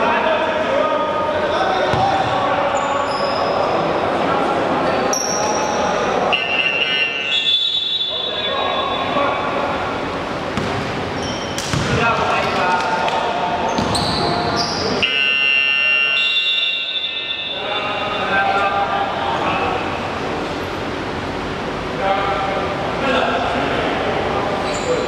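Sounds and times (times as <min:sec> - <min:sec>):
basketball bouncing on wooden floor: 0:10.6 - 0:10.9, 0:11.6 - 0:12.0
high squeaks: 0:11.2 - 0:11.6.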